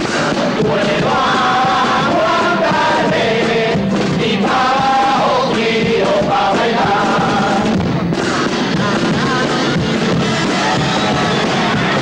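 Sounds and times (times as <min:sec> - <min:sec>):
acoustic guitar with group: 0:00.0 - 0:12.0.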